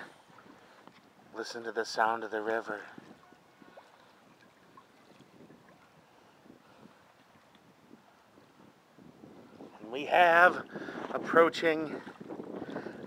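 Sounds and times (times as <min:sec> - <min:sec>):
water lapping against rocks: 0:00.0 - 0:13.0
small splashes: 0:02.8 - 0:06.0.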